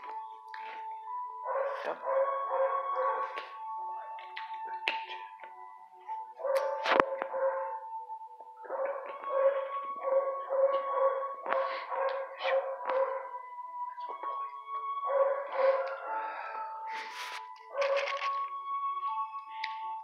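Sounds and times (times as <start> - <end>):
dogs howling: 1.4 - 3.4, 8.6 - 13.5, 15.0 - 16.7
dogs barking: 1.4 - 3.5, 6.4 - 7.9, 8.6 - 13.4, 15.0 - 16.3, 17.7 - 18.3.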